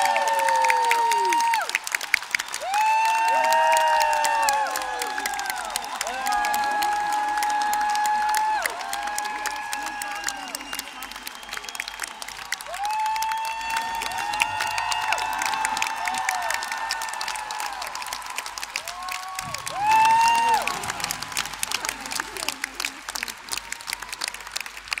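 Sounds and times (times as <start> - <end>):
audience cheering: 0.0 - 25.0
audience clapping: 0.0 - 25.0.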